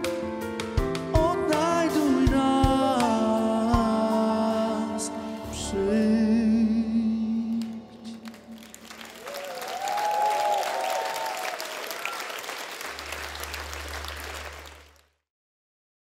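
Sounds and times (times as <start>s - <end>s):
audience applause: 7.6s - 15.1s.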